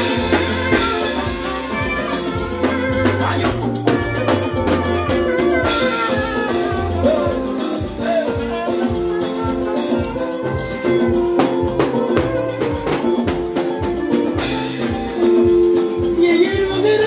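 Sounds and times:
bass: 0:00.0 - 0:17.0
drum beat: 0:00.0 - 0:17.0
keyboard: 0:00.0 - 0:17.0
shakers: 0:00.0 - 0:17.0.

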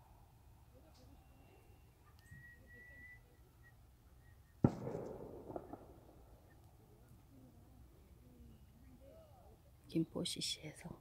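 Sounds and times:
high whistle-like tone: 0:01.1 - 0:04.7
sharp crack: 0:04.6 - 0:06.8.

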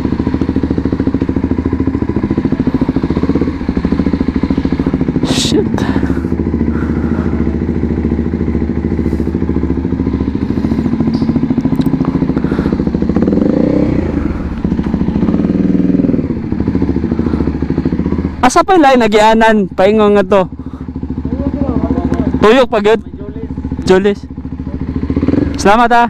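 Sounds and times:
motorcycle engine running: 0:00.0 - 0:26.0.

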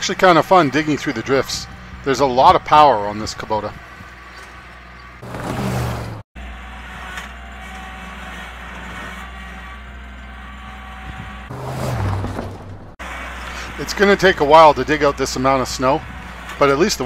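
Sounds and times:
tractor diesel engine running: 0:00.0 - 0:17.0.

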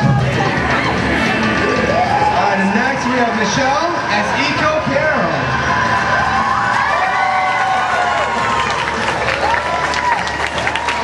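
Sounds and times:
audience cheering: 0:00.0 - 0:11.0
background music: 0:00.0 - 0:11.0.

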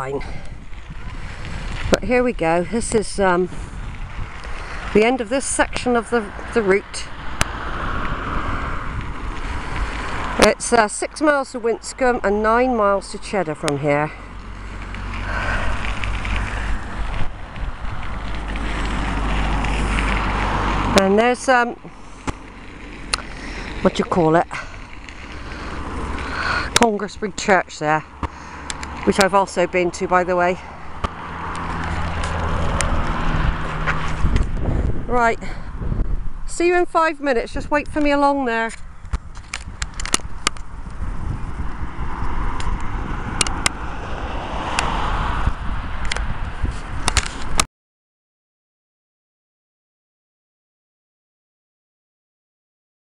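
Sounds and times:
outdoor background noise: 0:00.0 - 0:47.7
wind buffeting microphone: 0:00.0 - 0:47.7
bike clicks and rattles: 0:14.2 - 0:20.9, 0:22.0 - 0:26.9, 0:28.2 - 0:29.4, 0:30.9 - 0:34.9, 0:38.0 - 0:43.8, 0:46.0 - 0:47.7.

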